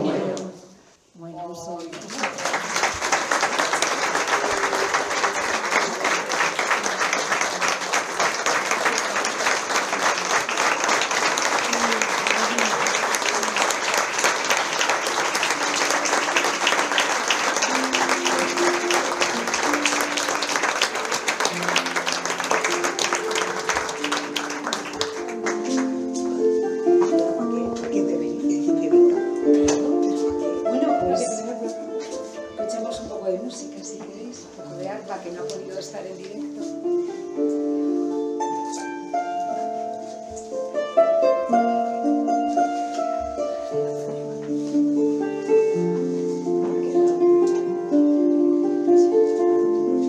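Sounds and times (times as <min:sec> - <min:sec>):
audience applauding: 0:01.9 - 0:26.3.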